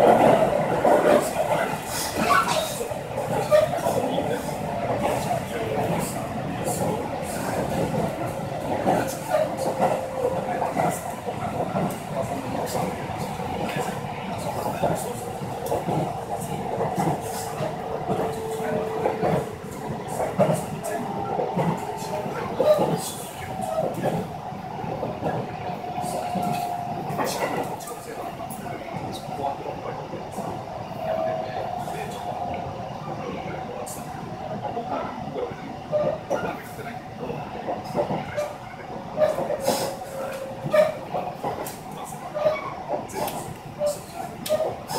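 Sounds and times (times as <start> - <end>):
train knocks: 0.0 - 29.3
train running on rails: 0.0 - 44.9.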